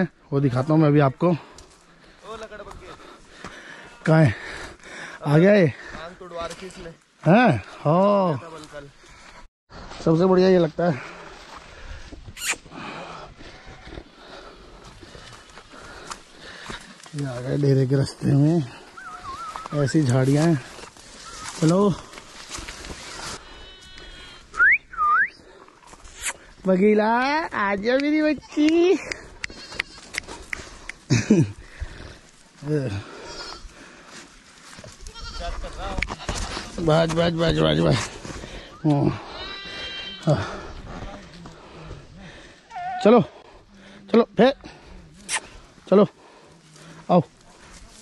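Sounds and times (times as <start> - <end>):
footsteps crunching through bushes: 5.7 - 7.8, 8.4 - 12.3, 13.2 - 24.6, 25.8 - 42.2, 46.5 - 48.0
goat bleating: 23.4 - 24.4, 29.4 - 30.2, 35.0 - 36.5, 39.1 - 40.6.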